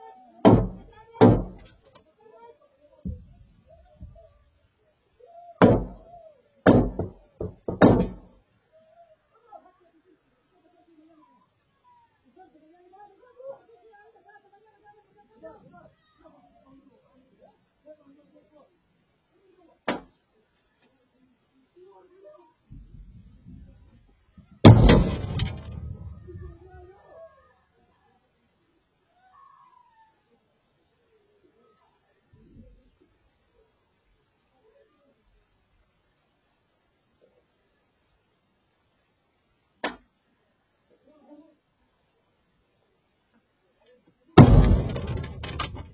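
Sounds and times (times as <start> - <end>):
gunshots: 24.6 - 26.6, 44.4 - 45.9.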